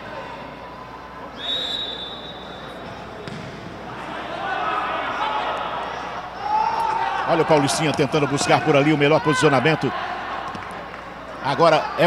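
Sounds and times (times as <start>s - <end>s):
referee's whistle blast: 1.4s - 2.8s
ball thuds on court: 3.2s - 3.8s.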